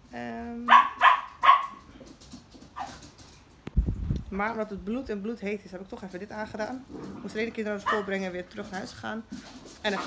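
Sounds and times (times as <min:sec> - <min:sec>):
dog yipping: 0:00.7 - 0:01.8, 0:07.8 - 0:08.1.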